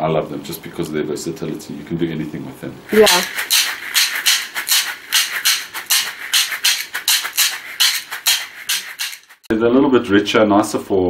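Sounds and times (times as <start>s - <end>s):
basket shakers rattling: 2.9s - 9.5s.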